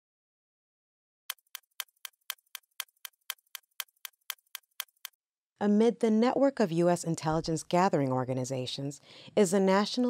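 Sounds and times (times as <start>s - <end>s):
stopwatch ticking: 1.3s - 5.2s.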